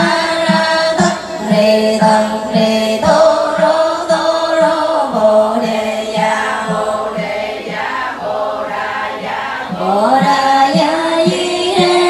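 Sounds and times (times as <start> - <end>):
steady beat: 0.0 - 12.0
women chanting in unison: 0.0 - 12.0.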